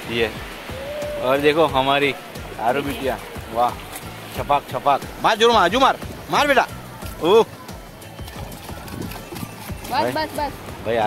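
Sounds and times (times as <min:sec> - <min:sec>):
wave washing in: 0:00.0 - 0:11.0.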